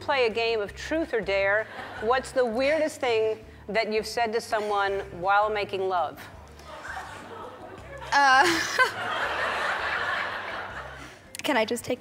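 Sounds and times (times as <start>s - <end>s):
audience laughing: 6.6s - 11.2s.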